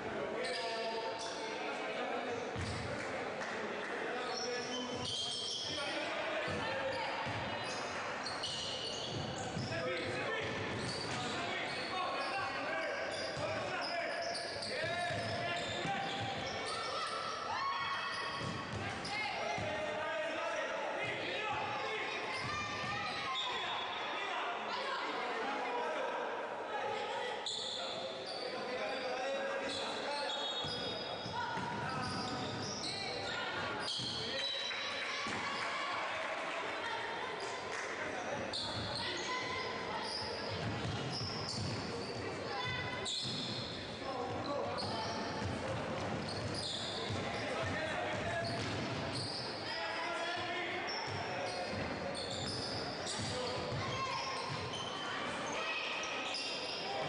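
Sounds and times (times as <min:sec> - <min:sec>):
voices of players and spectators: 0:00.0 - 0:57.0
ball bouncing on hardwood court: 0:18.4 - 0:19.7, 0:31.5 - 0:32.6, 0:45.4 - 0:49.2.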